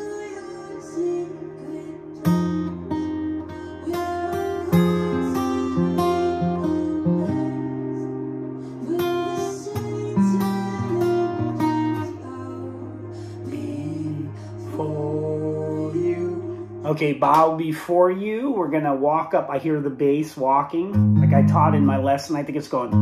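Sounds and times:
fingerstyle acoustic guitar: 2.0s - 17.4s, 20.9s - 22.3s.

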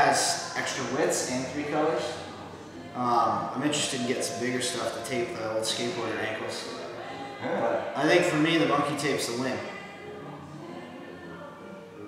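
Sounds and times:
quiet sustained background music: 0.0s - 12.0s.

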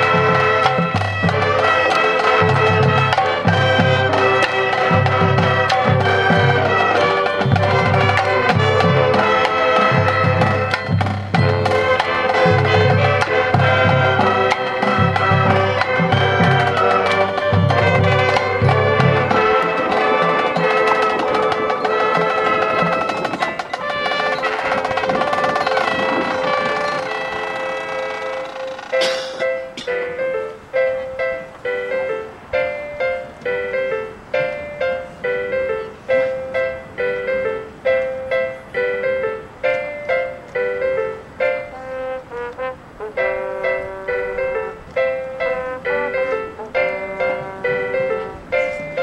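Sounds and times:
brass and woodwind chords: 0.0s - 49.0s
marching band playing: 0.0s - 49.0s.

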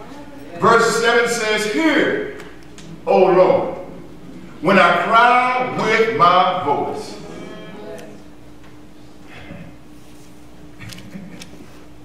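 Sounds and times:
low held tone: 2.9s - 8.4s.

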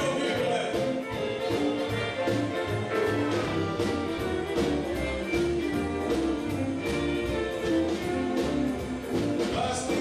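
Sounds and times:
western swing band playing: 0.0s - 10.0s.

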